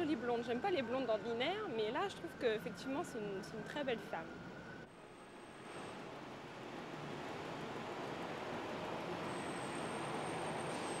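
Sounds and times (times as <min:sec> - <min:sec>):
street traffic passing: 0:00.0 - 0:11.0.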